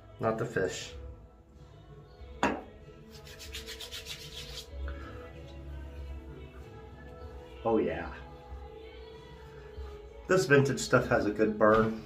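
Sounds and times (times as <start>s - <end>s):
hands rubbing briskly: 3.1s - 4.8s.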